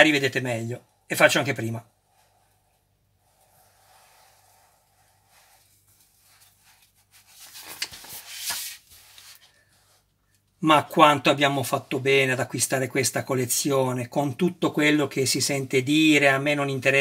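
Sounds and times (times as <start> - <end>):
magazine pages rustling: 5.5 - 9.7.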